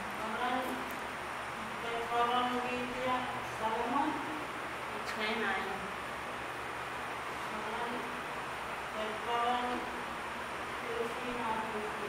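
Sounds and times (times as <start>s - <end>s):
steady buzzing hiss: 0.0s - 12.0s
woman reading aloud: 0.1s - 0.9s, 1.6s - 6.0s, 7.4s - 8.2s, 8.9s - 10.0s, 10.8s - 12.0s.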